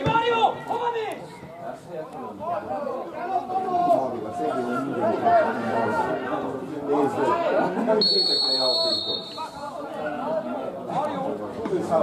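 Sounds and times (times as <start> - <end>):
spectator chatter: 0.0 - 12.0.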